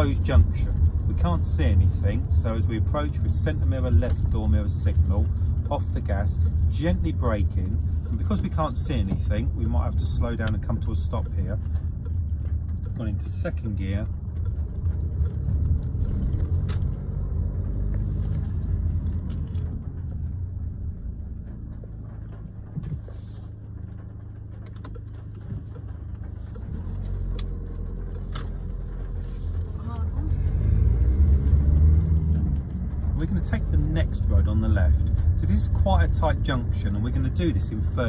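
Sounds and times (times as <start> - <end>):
car engine: 0.0 - 38.0
road noise inside car: 0.0 - 38.0.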